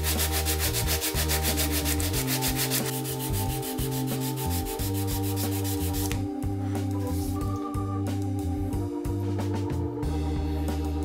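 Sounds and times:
wood rubbing on sandpaper: 0:00.0 - 0:06.2
organ music: 0:00.0 - 0:11.0.

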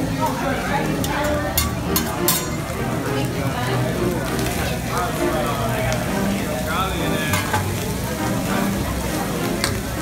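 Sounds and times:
fried rice sizzling on griddle: 0:00.0 - 0:10.0
metal spatula stirring rice: 0:01.0 - 0:02.6.

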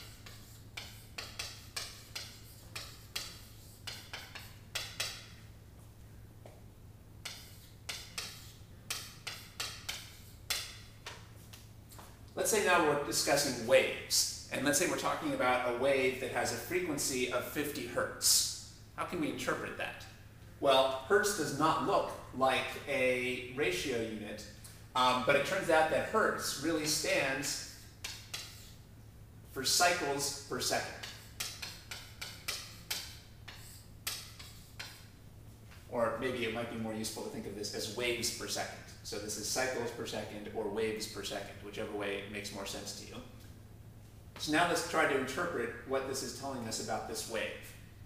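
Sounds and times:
chalk scratching on chalkboard: 0:00.0 - 0:05.4, 0:07.2 - 0:11.3, 0:26.4 - 0:28.8, 0:29.8 - 0:35.2
low steady hum: 0:00.0 - 0:48.0.

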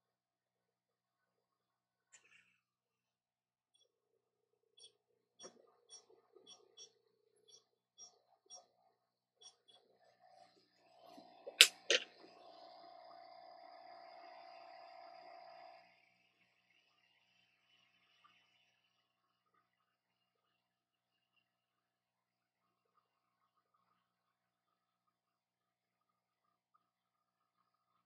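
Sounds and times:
sharp clicks: 0:11.5 - 0:12.0.

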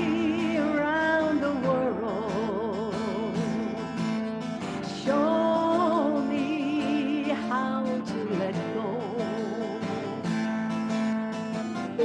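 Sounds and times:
woman singing with vibrato: 0:00.0 - 0:04.0, 0:04.6 - 0:10.5
strummed acoustic guitar: 0:00.0 - 0:12.0.

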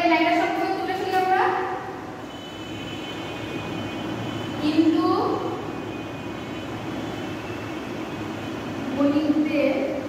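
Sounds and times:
woman's voice: 0:00.0 - 0:01.8, 0:04.6 - 0:05.5, 0:08.9 - 0:10.0
faint high whine: 0:02.1 - 0:10.0.

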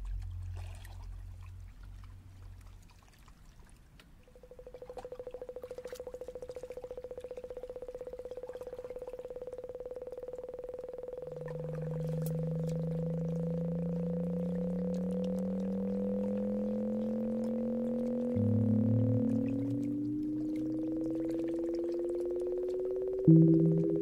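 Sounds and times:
rapidly pulsing mid-pitched tone: 0:04.3 - 0:24.0
low tone rising in pitch: 0:07.0 - 0:24.0.

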